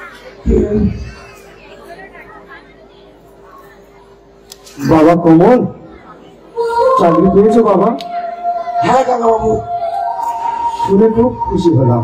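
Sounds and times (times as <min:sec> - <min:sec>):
faint chatter of voices: 0:00.0 - 0:05.0
steady hum: 0:00.0 - 0:12.0.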